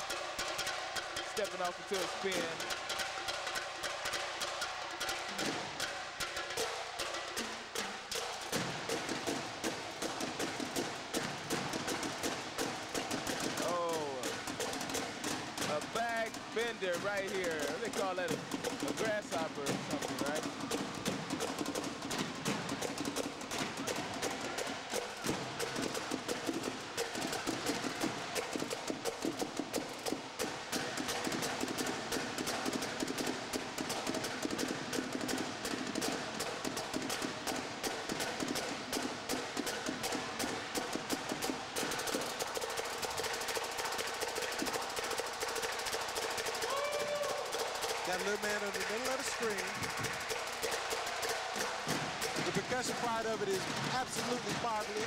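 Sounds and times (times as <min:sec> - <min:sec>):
marching drumline cadence: 0:00.0 - 0:55.0
voices and shouts: 0:46.7 - 0:47.6.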